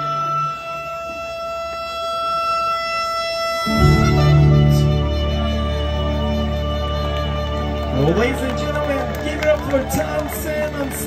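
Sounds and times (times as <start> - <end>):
soprano saxophone long note: 0.0 - 8.2
backing track chord: 3.7 - 8.2.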